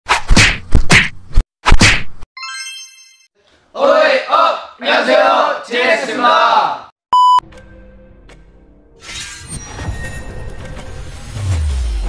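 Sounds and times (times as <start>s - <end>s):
loud sharp whacks: 0.1s - 2.2s.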